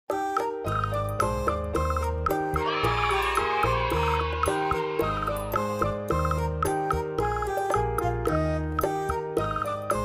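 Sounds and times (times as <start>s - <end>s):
upbeat children's music: 0.1s - 10.0s
wavering high tone: 2.5s - 6.5s.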